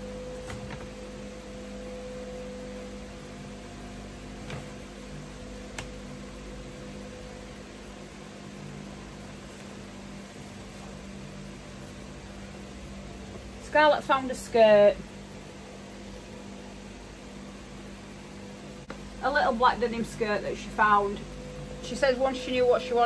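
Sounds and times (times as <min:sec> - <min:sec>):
room tone hum and hiss: 0:00.0 - 0:23.0.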